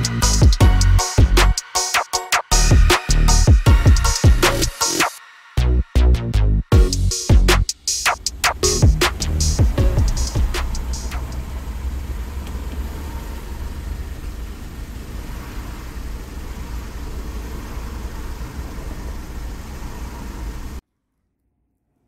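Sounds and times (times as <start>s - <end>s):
car cabin rumble and hiss: 7.6s - 20.8s.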